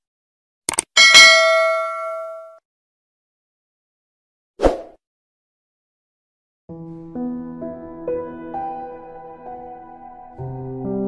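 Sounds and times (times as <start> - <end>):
notification bell dinging: 1.0 - 2.6.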